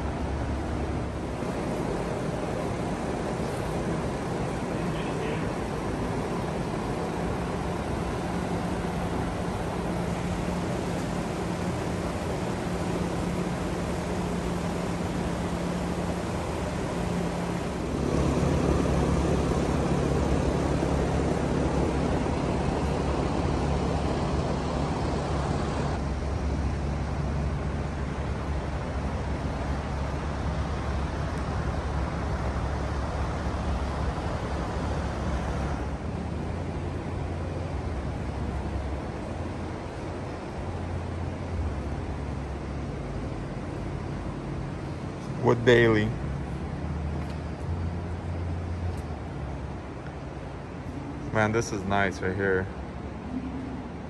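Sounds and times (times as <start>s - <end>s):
low mechanical hum: 0.0s - 54.0s.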